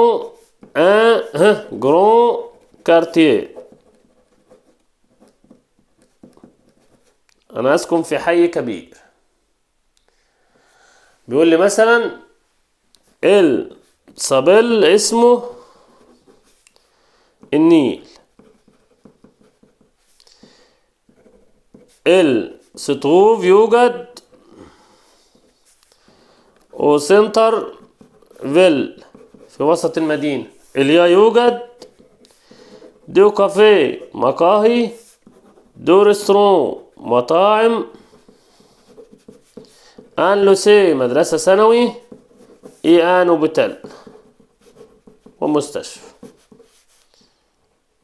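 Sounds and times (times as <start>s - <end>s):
pen writing on paper: 2.4s - 7.2s, 15.4s - 16.6s, 18.1s - 22.8s, 24.2s - 36.3s, 37.3s - 47.2s.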